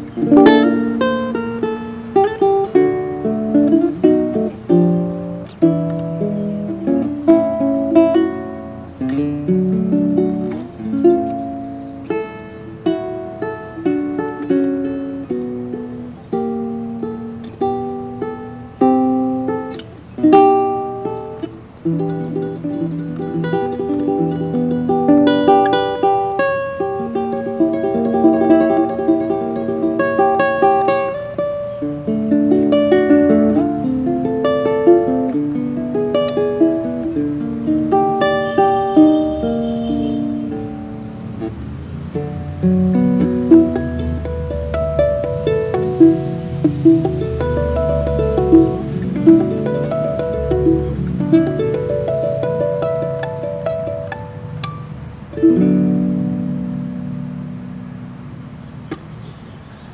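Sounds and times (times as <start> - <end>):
fingerstyle guitar playing: 0.0 - 59.9.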